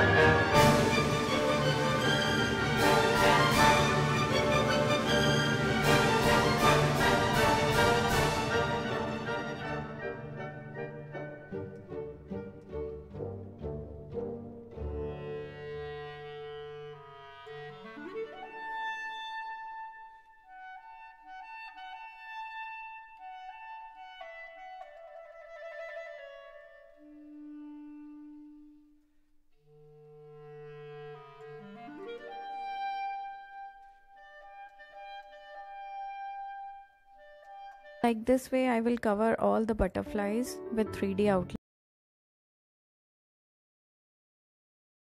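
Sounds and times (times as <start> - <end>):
woodwind melody: 0.0 - 38.8.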